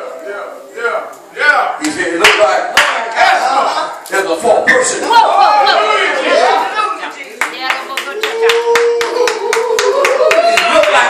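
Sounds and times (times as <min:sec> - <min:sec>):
hands clapping in rhythm: 0:01.8 - 0:03.1, 0:07.4 - 0:11.0.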